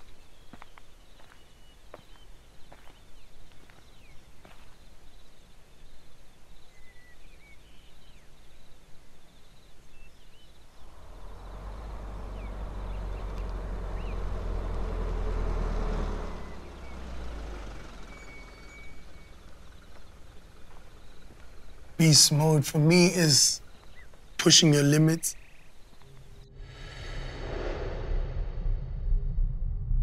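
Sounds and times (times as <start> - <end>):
car engine and tyre rumble: 0.0 - 9.7, 10.3 - 24.5.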